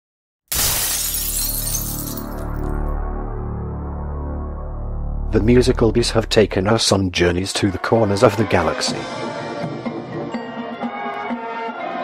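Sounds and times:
glass shattering: 0.5 - 2.7.

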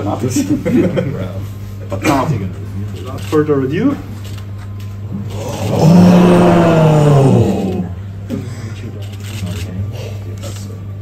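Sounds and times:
low room hum: 0.0 - 11.0
faint murmurs: 5.1 - 10.9.

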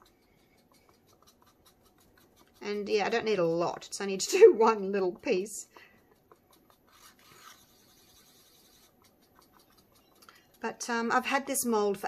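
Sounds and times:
stick scratching in small cup: 0.0 - 12.0.

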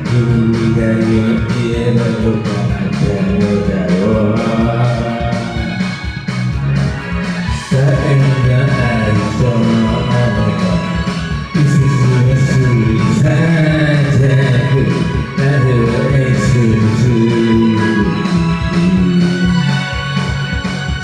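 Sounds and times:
man singing into a microphone: 0.0 - 6.0, 7.5 - 19.9
band backing track: 0.0 - 21.0.

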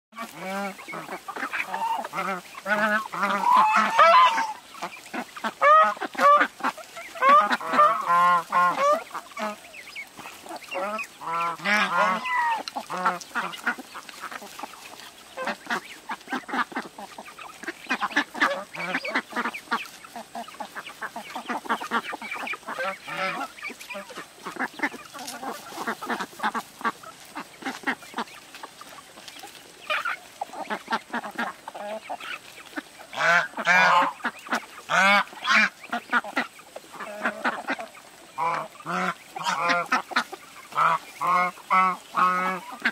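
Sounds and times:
ducks quacking: 0.1 - 42.9.

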